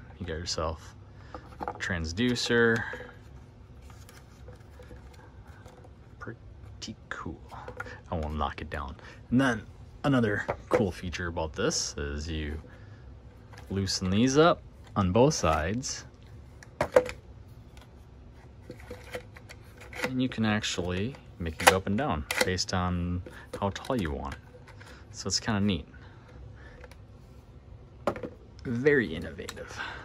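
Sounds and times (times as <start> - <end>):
cable rubbing on plastic case: 17.8 - 22.5.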